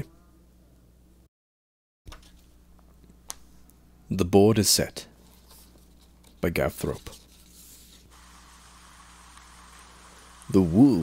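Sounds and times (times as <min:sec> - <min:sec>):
low electrical hum: 0:00.0 - 0:01.3, 0:02.1 - 0:11.0
faint steady hiss: 0:02.8 - 0:11.0.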